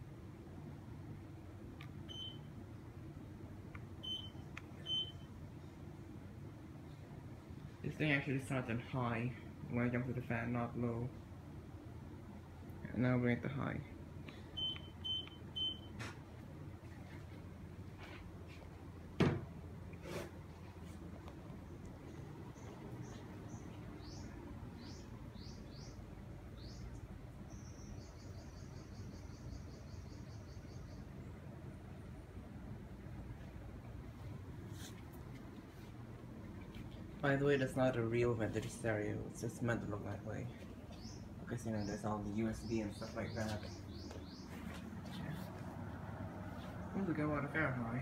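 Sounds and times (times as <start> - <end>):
air conditioner fan running: 0.0 - 48.0
air conditioner beeps: 1.8 - 2.9, 3.8 - 6.2, 14.3 - 16.4
thump: 19.2 - 19.5.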